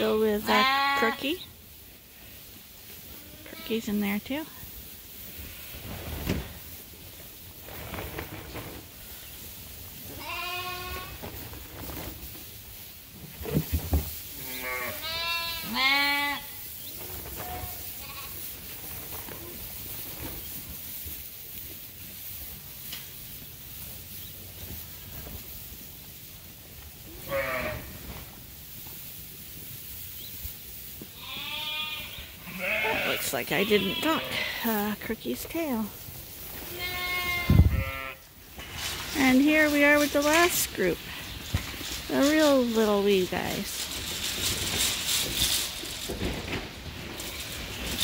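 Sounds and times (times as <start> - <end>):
sheep bleating: 14.4 - 16.5, 31.2 - 34.8, 36.7 - 38.2.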